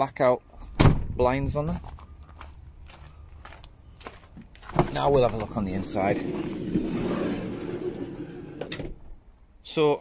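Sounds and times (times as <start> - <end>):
sliding van door rumbling open: 5.8 - 9.1.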